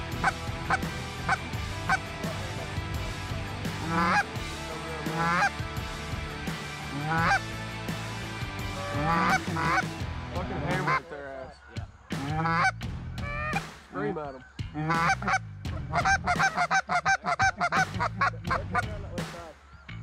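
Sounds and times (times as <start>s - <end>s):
goose honks: 0.0s - 4.3s, 5.0s - 5.6s, 6.9s - 7.4s, 8.7s - 9.9s, 10.7s - 11.1s, 12.2s - 13.6s, 14.8s - 19.0s.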